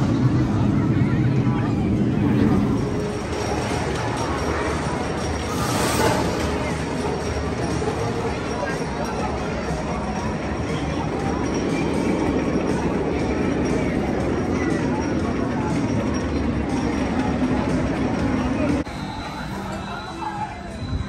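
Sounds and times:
crowd voices: 0.0 - 21.0
roller coaster train rushing: 0.0 - 21.0.

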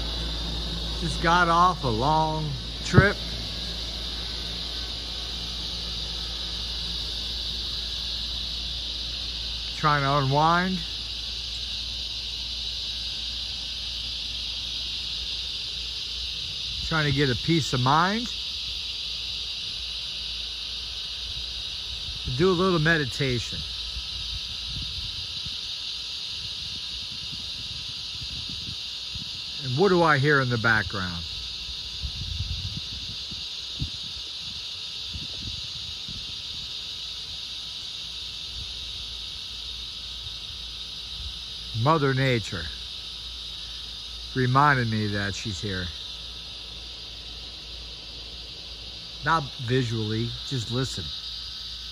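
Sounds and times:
cicada chorus drone: 0.0 - 51.9.

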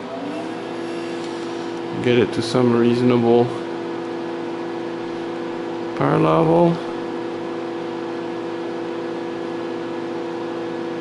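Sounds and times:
cooling fan spinning up: 0.0 - 11.0
equipment hum: 0.0 - 11.0.

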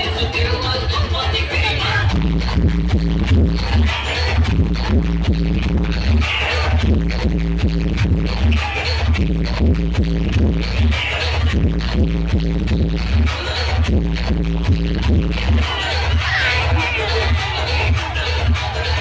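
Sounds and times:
dance music with heavy bass: 0.0 - 19.0.

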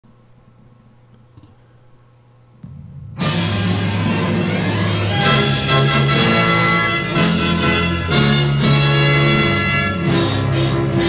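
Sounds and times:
steady low hum: 0.0 - 11.0
faint clicks: 1.1 - 1.6.

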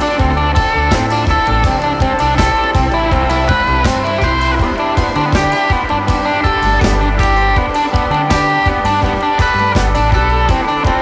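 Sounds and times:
bass guitar: 0.0 - 11.0
electric guitar lead notes: 0.0 - 11.0
steady drum beat: 0.0 - 11.0.

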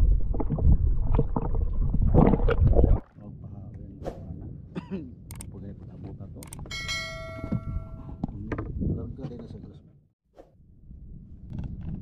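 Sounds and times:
quick clicks: 5.3 - 5.5
bright bell chime: 6.7 - 8.2.

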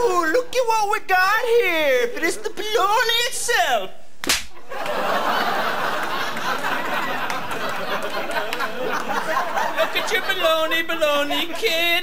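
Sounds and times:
sharp slap: 4.2 - 4.6.

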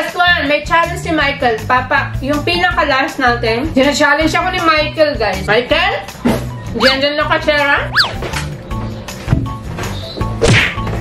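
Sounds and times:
background music: 0.0 - 11.0
falling whoosh effect: 7.9 - 8.3
sharp smack effect: 10.4 - 10.9.

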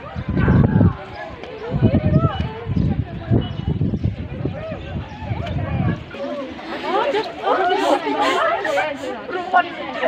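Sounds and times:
young voices chattering: 0.0 - 10.0.

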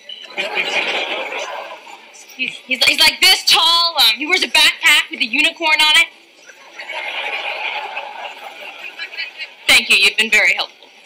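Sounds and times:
studio audience laughter: 0.2 - 2.2, 6.4 - 9.6.

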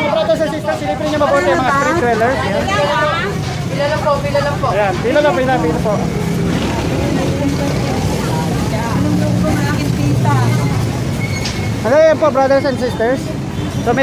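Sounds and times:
people talking: 0.0 - 11.1
vehicle engine droning: 0.0 - 14.0.

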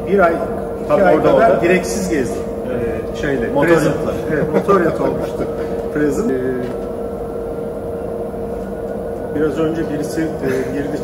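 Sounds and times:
constant mid-pitched tone: 0.0 - 11.0
low mechanical rumble and hum: 0.0 - 11.0.

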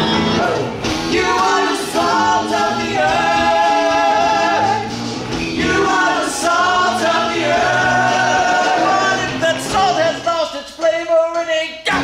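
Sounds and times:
cast singing together: 0.0 - 10.5
backing music: 0.0 - 12.0.

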